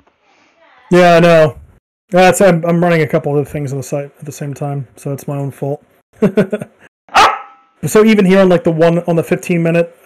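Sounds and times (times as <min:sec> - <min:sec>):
person laughing: 0:06.2 - 0:06.9.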